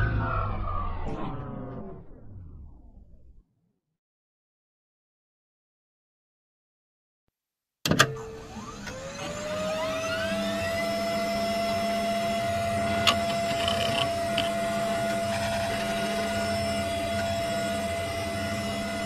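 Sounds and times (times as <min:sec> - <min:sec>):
electric motor whining: 0:08.3 - 0:19.0.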